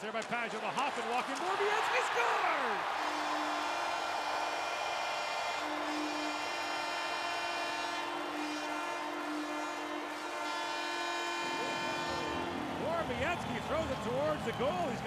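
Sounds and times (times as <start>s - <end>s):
crowd cheering: 0.2s - 15.0s
goal horn sounding: 1.5s - 13.8s.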